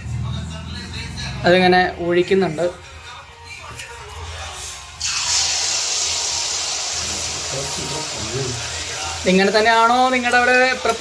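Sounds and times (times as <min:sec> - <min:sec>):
batter sizzling in hot oil: 0:05.0 - 0:11.0.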